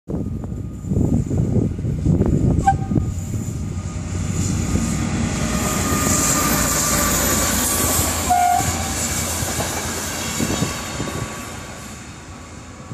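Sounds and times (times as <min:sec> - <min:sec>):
train wheels running on rails: 0:00.1 - 0:12.9.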